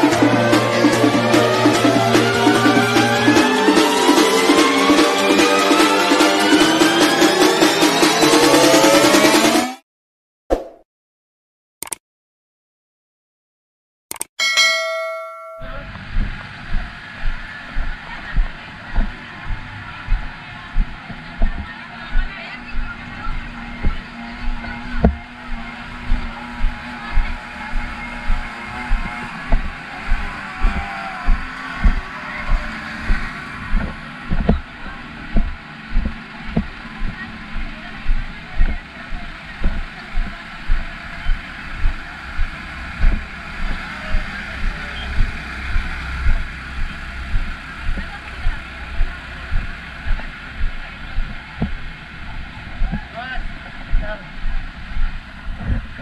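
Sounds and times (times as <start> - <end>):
fire truck engines running: 0.0 - 8.8, 15.8 - 56.0
crowd chatter: 15.6 - 56.0
footsteps thumping: 16.1 - 34.6, 35.3 - 51.9.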